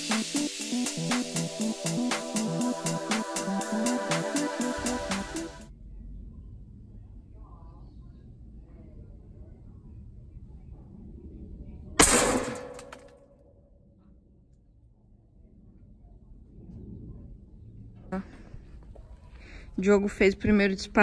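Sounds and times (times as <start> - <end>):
pellet hitting target: 12.0 - 13.2.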